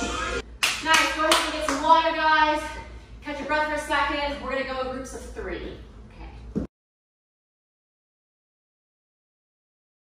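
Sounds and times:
dance music: 0:00.0 - 0:00.4
hand claps: 0:00.6 - 0:01.9
woman's voice: 0:00.8 - 0:06.5.

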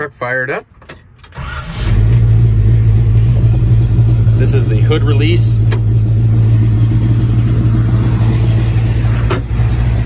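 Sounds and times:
truck engine running: 0:01.4 - 0:10.0.

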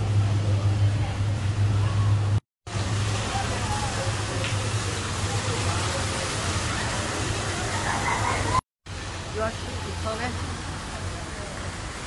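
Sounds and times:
faint voices: 0:03.1 - 0:08.6.

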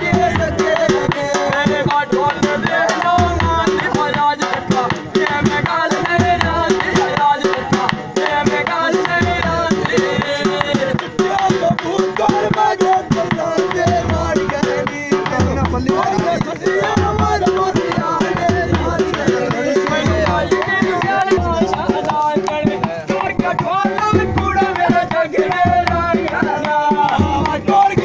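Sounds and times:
drum beaten with a stick: 0:00.0 - 0:28.0
man singing folk song: 0:00.0 - 0:28.0.

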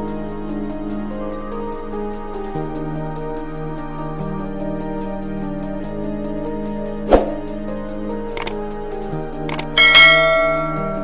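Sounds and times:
soft background music: 0:00.0 - 0:11.0
quick clicks: 0:08.4 - 0:08.6, 0:09.5 - 0:09.8
bell chime: 0:09.8 - 0:11.0.

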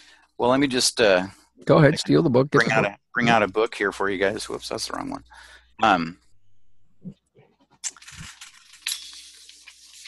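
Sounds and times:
rustling objects at a desk: 0:07.3 - 0:10.0.

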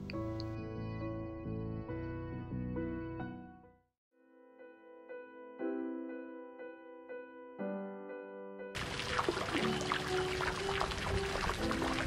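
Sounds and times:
soft background music: 0:00.0 - 0:12.0
water jetting and splashing: 0:08.8 - 0:12.0.

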